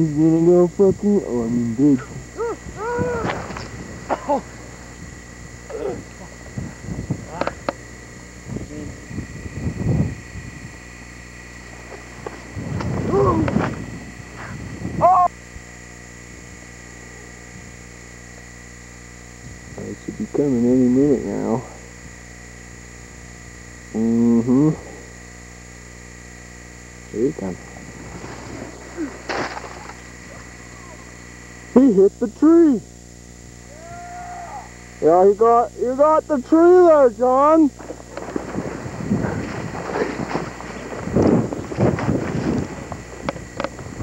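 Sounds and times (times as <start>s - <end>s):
camcorder hiss and hum: 0.0s - 44.0s
faint steady whine: 0.0s - 44.0s
wind rumble on microphone: 0.8s - 15.2s, 19.4s - 20.2s, 27.6s - 28.9s, 38.0s - 44.0s
person shouting: 2.4s - 3.4s, 5.7s - 6.1s, 13.1s - 13.5s, 15.0s - 15.3s, 30.3s - 31.1s, 33.7s - 34.8s.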